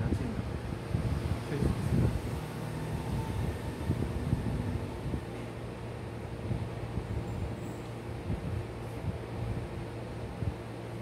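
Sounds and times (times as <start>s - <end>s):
fan humming: 0.0s - 11.0s.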